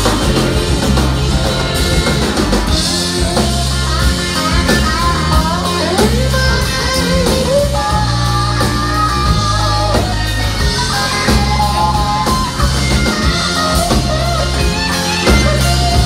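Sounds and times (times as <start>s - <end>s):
drum kit: 0.0s - 16.0s
electric guitar: 0.0s - 16.0s
pedal steel guitar: 0.0s - 16.0s.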